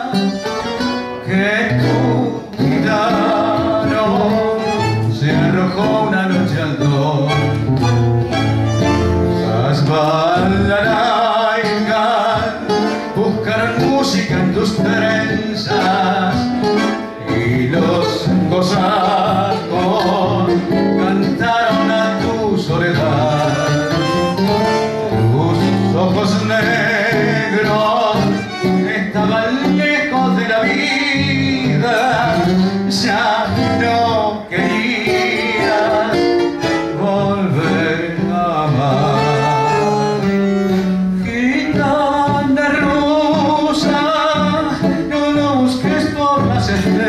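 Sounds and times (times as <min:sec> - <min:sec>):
guitar accompaniment: 0:00.0 - 0:47.0
man singing tango: 0:00.0 - 0:47.0.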